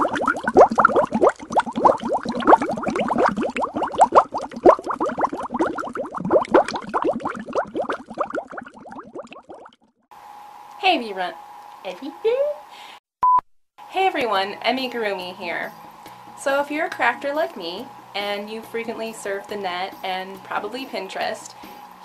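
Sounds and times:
liquid bubbling: 0:00.0 - 0:09.9.

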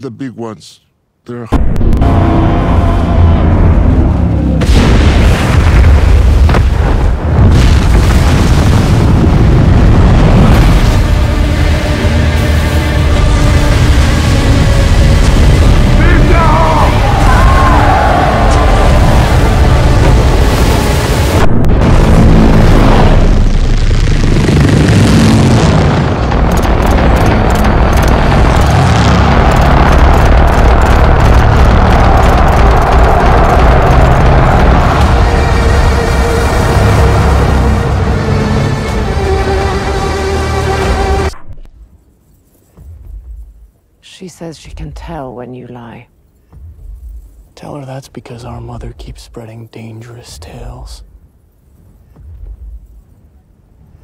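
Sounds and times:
loud burst of noise: 0:01.6 - 0:41.3
deep continuous rumble: 0:01.6 - 0:44.0
film music: 0:10.0 - 0:42.1.

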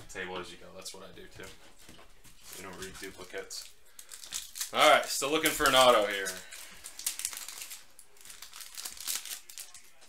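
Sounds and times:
foil wrapper crinkling and tearing: 0:02.4 - 0:10.0.

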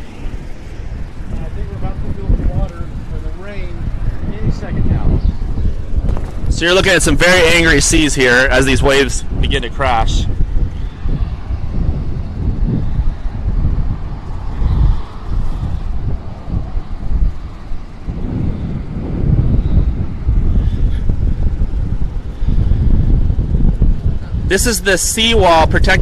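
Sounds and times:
gusty wind buffeting microphone: 0:00.0 - 0:26.0.

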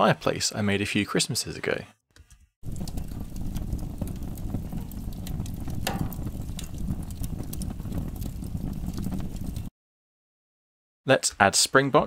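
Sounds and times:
fire crackling and popping: 0:02.6 - 0:09.7
fire rumbling in fireplace: 0:02.6 - 0:09.7.

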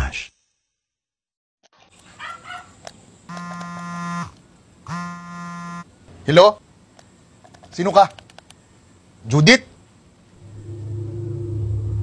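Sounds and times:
mobile phone buzzing on vibrate: 0:03.3 - 0:05.9.

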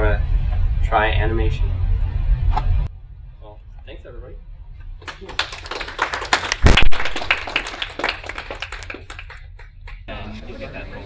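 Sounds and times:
small audience applauding: 0:05.0 - 0:10.1.

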